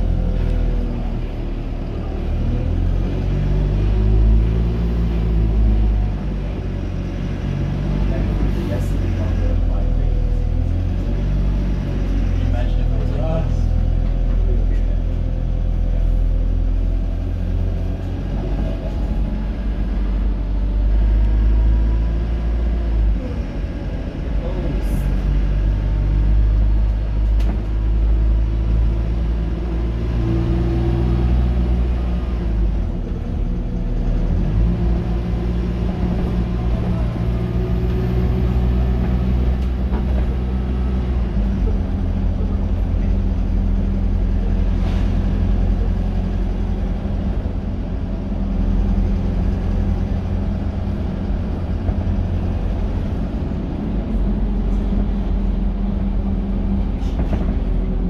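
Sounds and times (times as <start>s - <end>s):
bus engine rumbling: 0.0s - 58.0s.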